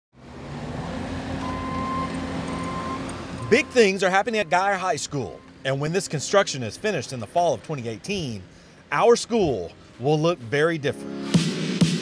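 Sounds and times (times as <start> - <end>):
construction machinery engine running: 0.9 - 10.0
reversing alarm beeping: 1.4 - 5.9.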